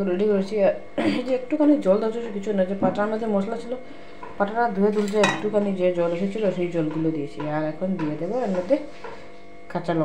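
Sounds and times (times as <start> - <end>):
metal bowl clinking: 4.9 - 5.6.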